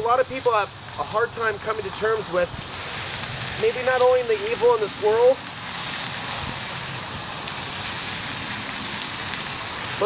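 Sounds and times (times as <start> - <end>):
food sizzling in frying pan: 0.0 - 10.0.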